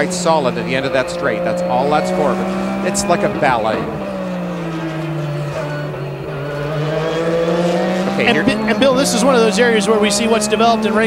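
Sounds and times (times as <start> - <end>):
race car engine at high revs: 0.0 - 11.0.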